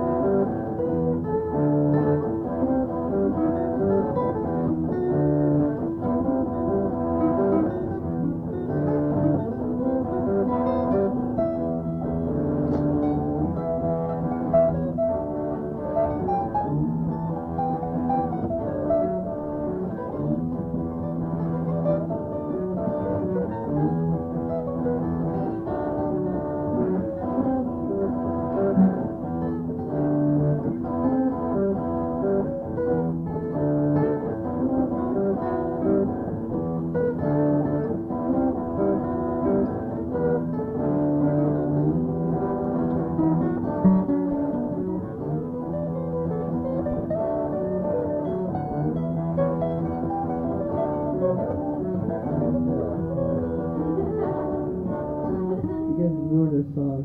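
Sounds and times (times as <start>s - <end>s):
muffled guitar band music: 0.0s - 57.0s.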